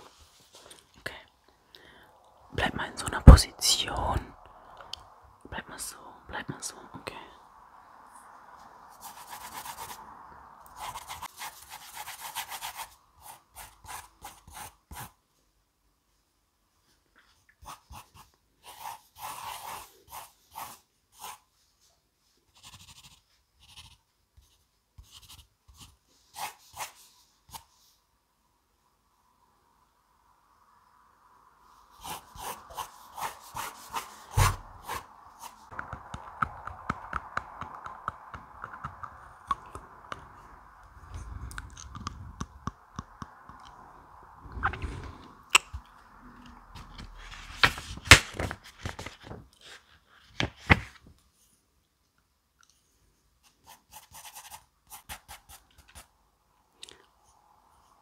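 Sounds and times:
pencil scratching on paper: 0:09.0 - 0:10.0, 0:10.8 - 0:15.2, 0:17.6 - 0:21.5, 0:22.5 - 0:27.7, 0:32.0 - 0:35.6, 0:53.4 - 0:56.1.

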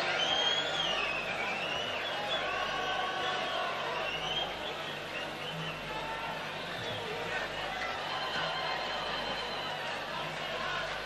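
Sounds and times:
audience noise: 0:00.0 - 0:11.0.

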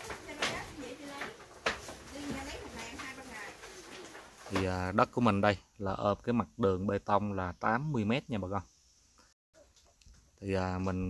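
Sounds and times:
man speaking: 0:04.5 - 0:08.6, 0:10.4 - 0:11.0.

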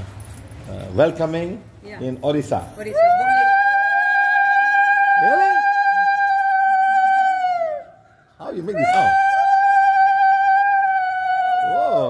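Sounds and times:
woman's long high call: 0:02.9 - 0:08.0.

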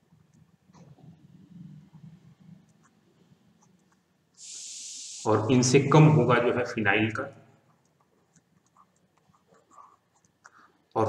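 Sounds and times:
stylus scratching on tablet: 0:01.8 - 0:04.2, 0:07.6 - 0:10.8.

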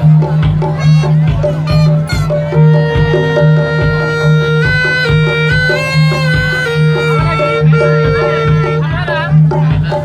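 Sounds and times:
reedy shawm melody: 0:00.0 - 0:10.0
steady drumbeat: 0:00.0 - 0:10.0.

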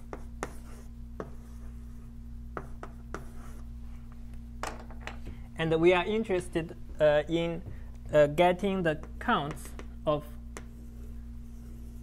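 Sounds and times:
chalk tapping blackboard: 0:00.0 - 0:01.6, 0:02.6 - 0:03.6, 0:10.5 - 0:11.8
chalk scratching: 0:00.0 - 0:03.7, 0:10.6 - 0:12.0.

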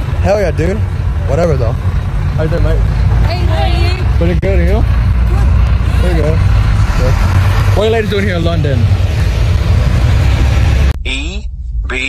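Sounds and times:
loud outdoor rumbling: 0:00.0 - 0:12.0.

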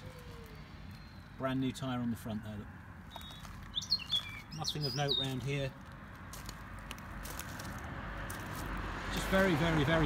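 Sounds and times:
footsteps crunching on gravel: 0:03.0 - 0:09.4.

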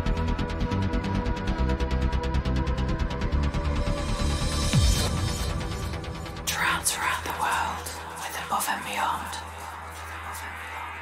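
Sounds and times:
breathy whispered voice: 0:06.4 - 0:11.0.

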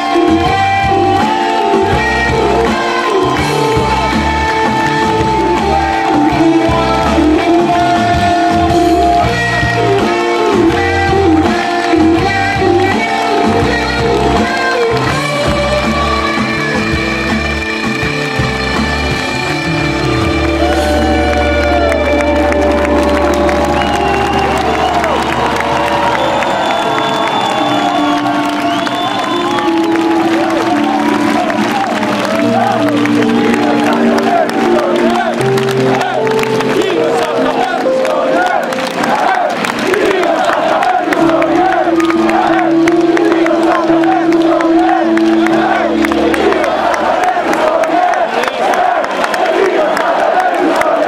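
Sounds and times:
crowd cheering and whooping: 0:00.0 - 0:16.9, 0:19.6 - 0:51.0
live band playing instrumental: 0:00.0 - 0:40.0, 0:41.1 - 0:47.4.

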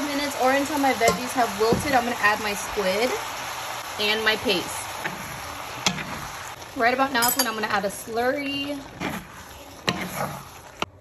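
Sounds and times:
stir fry sizzling in a pan: 0:00.0 - 0:11.0.

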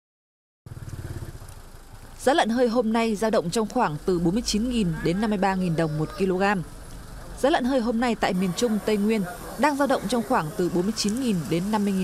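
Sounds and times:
truck engine idling: 0:00.7 - 0:12.0.

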